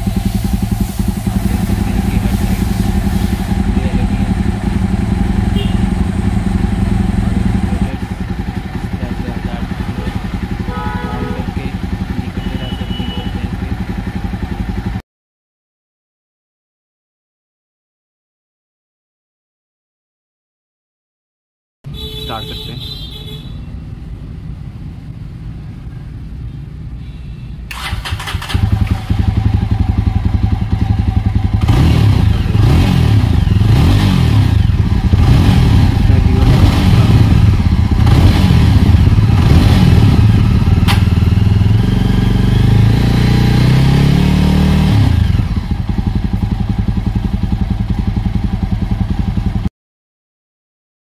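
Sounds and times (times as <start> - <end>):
motorcycle engine revving: 0.0 - 15.0, 27.7 - 49.7.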